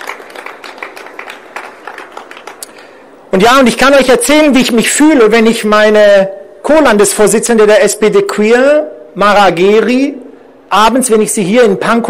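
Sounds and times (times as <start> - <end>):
audience applauding: 0.0 - 2.9.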